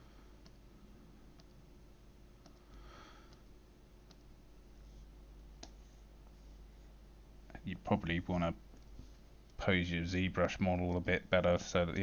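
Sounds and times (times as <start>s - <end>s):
steady low hum: 0.0s - 12.0s
computer mouse click: 0.4s - 0.6s, 1.3s - 1.6s, 2.4s - 4.3s.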